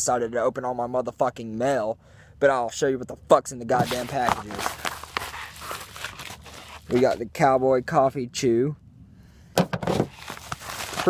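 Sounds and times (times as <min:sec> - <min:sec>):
paper envelope rustling: 0:03.8 - 0:07.3, 0:09.9 - 0:11.0.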